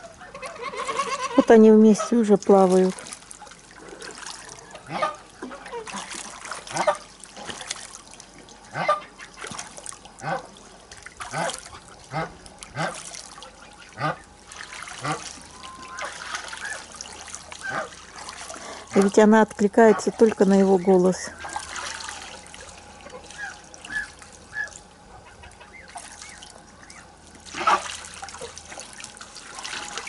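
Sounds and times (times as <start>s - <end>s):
geese honking: 0.0s - 2.3s, 4.4s - 6.1s, 8.7s - 9.4s, 11.2s - 28.0s
water trickling and splashing: 0.0s - 30.0s.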